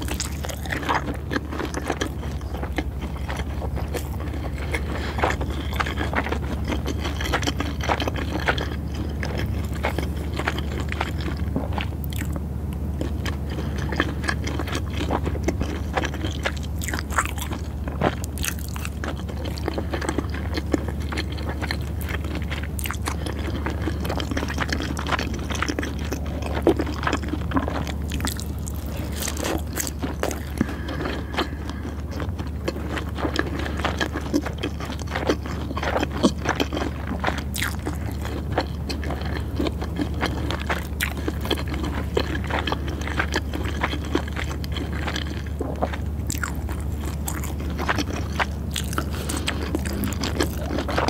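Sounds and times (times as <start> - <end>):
chewing with wet mouth clicks: 0.0 - 51.0
steady low hum: 0.0 - 51.0.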